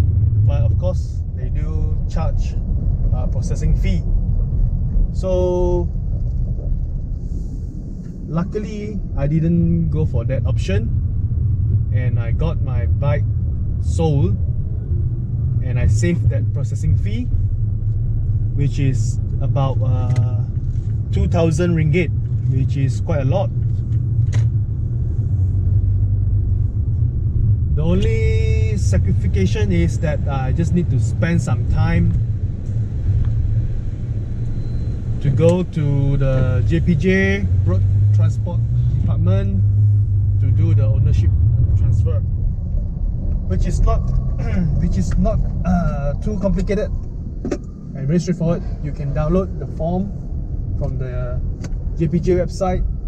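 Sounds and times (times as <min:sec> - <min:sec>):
car engine and tyres rumbling: 0:00.0 - 0:53.0.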